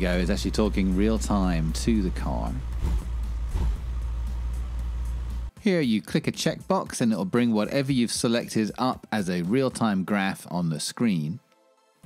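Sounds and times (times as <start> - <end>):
car engine rumbling from inside: 1.0 - 5.5.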